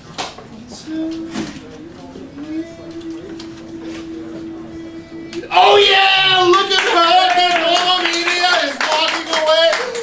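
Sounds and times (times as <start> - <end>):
long held sung note: 0.6 - 7.0
audience applause: 5.9 - 10.0.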